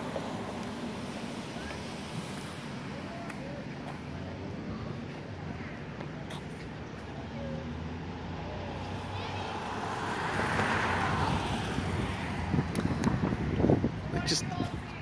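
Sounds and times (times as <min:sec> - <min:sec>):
vehicle passing by: 0:07.0 - 0:13.9.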